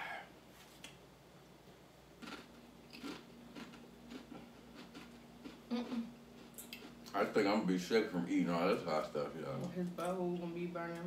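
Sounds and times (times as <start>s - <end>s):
chips crunching while chewed: 2.2s - 5.6s.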